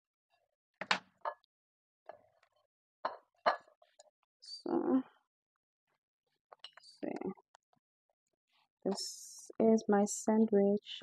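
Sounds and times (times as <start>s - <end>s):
kitchen items knocking and clinking: 0.8s - 1.3s.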